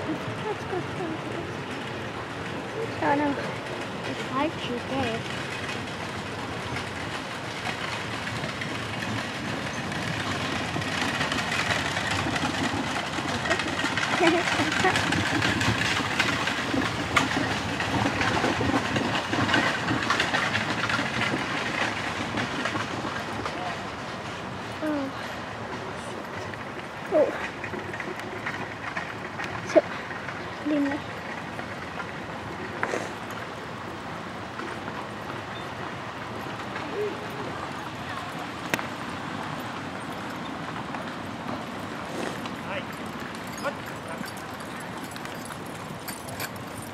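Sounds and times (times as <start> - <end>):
horse-drawn carriage rolling past: 0.0 - 46.9.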